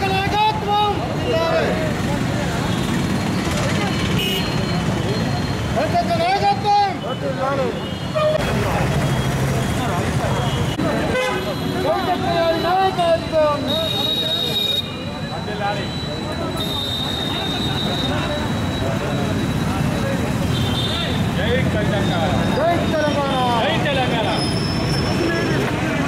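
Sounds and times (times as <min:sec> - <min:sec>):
street traffic: 0:00.0 - 0:26.0
vehicle horn: 0:11.1 - 0:11.6.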